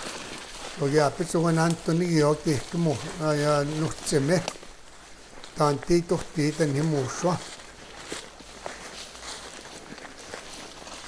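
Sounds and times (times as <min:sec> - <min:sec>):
footsteps through leaf litter: 0:00.0 - 0:11.0
person speaking: 0:00.8 - 0:04.6, 0:05.5 - 0:07.6.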